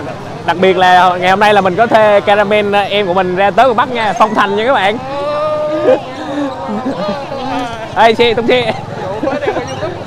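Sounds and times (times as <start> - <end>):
loud talk: 0.0 - 10.0
man talking: 0.5 - 10.0.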